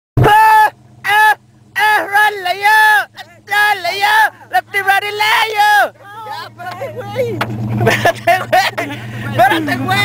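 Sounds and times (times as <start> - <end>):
low steady hum: 0.2 - 10.0.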